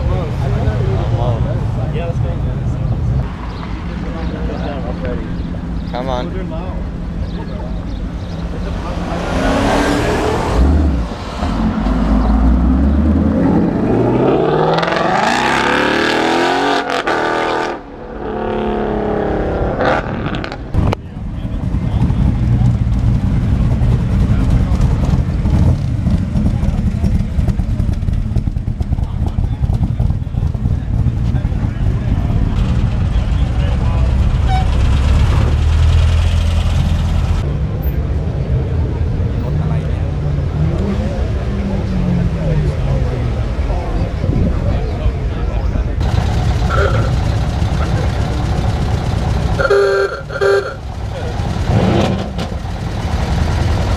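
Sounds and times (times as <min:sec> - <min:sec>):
cars rumbling past: 0:00.0 - 0:53.9.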